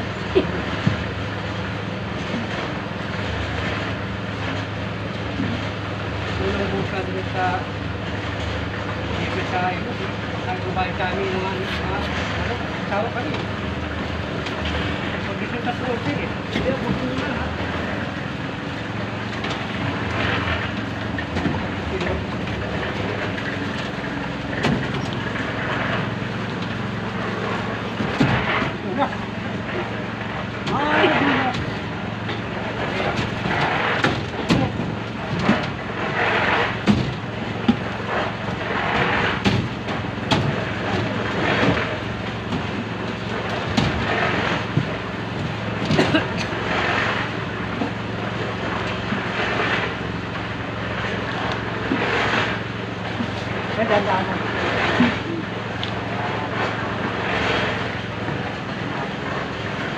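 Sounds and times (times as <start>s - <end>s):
voices: 9.1s - 36.0s.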